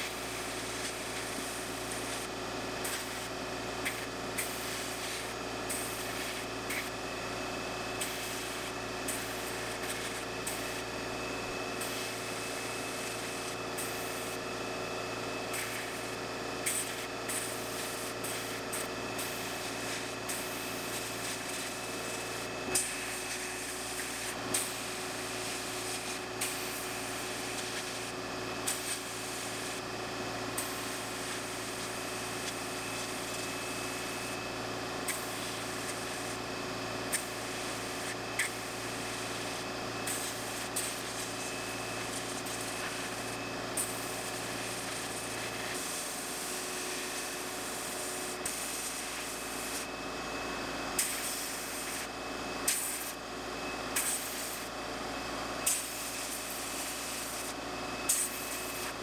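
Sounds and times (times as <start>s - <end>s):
hiss of blast gun air: 51.0s - 52.1s, 54.0s - 54.6s.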